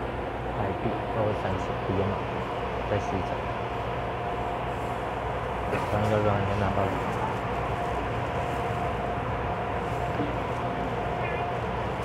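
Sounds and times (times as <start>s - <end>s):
faint equipment whine: 0.0s - 12.0s
train car interior hum: 0.0s - 12.0s.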